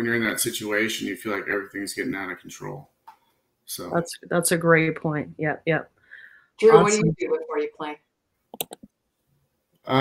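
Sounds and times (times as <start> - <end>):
man speaking: 0.0 - 2.9, 3.7 - 4.0, 6.6 - 7.2.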